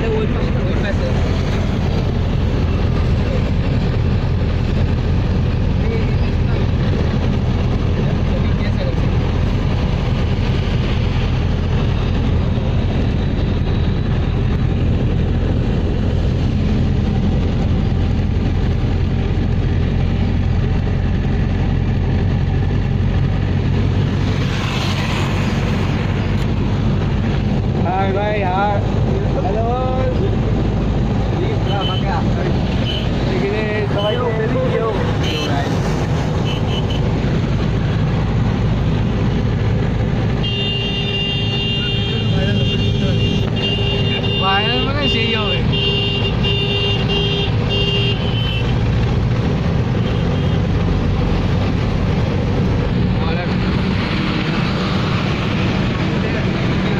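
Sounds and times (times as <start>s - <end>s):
car engine and road noise: 0.0s - 56.9s
voices talking: 31.2s - 35.9s, 41.7s - 45.8s.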